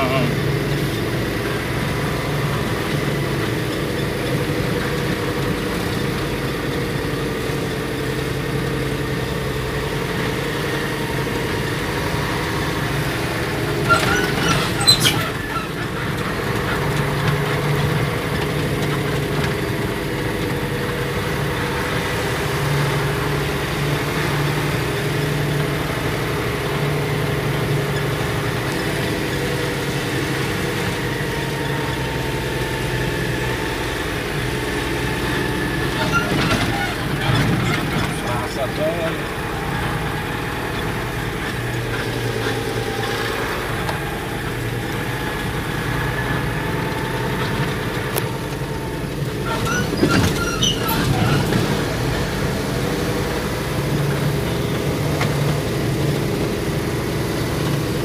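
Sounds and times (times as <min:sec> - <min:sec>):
vehicle engine running: 0:00.0 - 0:58.0.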